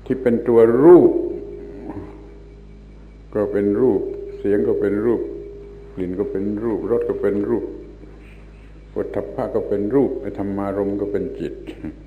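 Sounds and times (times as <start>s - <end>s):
man speaking: 0.0s - 2.4s, 3.3s - 8.0s, 8.9s - 12.0s
tape hum and hiss: 0.0s - 12.0s.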